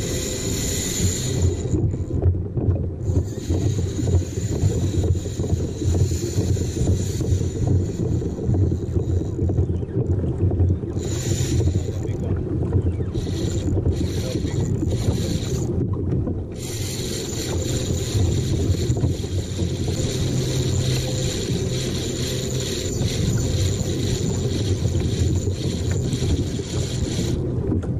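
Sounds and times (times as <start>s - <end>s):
wind buffeting microphone: 0.0s - 27.9s.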